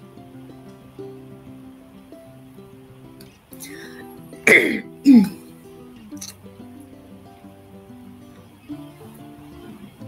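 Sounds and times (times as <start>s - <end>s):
soft guitar music: 0.0s - 10.0s
person coughing: 4.5s - 5.4s.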